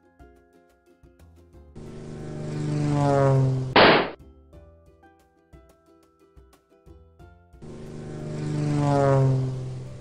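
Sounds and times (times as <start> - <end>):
light background music: 0.0 - 2.6, 4.2 - 10.0
cartoon falling whine: 2.3 - 4.2
loud short smack: 3.8 - 4.2.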